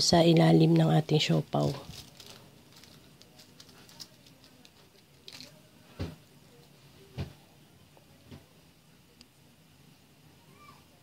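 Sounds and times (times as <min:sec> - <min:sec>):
paper rustling: 0:01.6 - 0:05.6.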